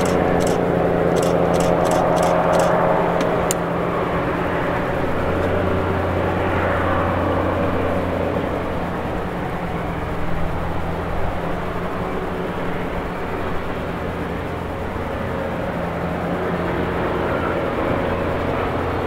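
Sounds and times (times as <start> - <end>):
sharp clicks: 0.0 - 3.6
train running: 0.0 - 3.6.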